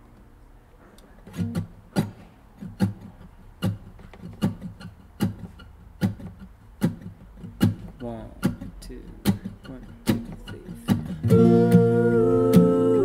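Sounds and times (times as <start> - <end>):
acoustic guitar: 0.0 - 13.0.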